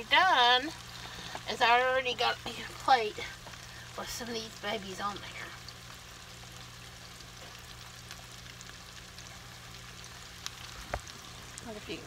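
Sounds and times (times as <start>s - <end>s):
low steady hum: 0.0s - 12.0s
oil sizzling and crackling: 0.0s - 12.0s.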